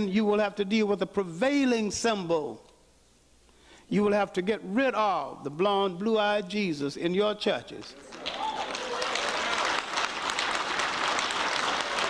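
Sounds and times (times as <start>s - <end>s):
audience applauding: 8.0s - 12.0s.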